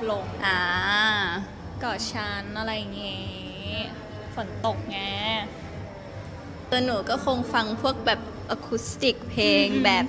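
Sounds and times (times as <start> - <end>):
woman speaking: 0.0 - 5.6, 6.7 - 10.0.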